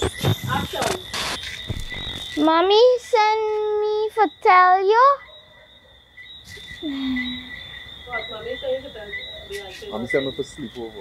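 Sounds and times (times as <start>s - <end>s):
night insects chorus: 0.0s - 11.0s.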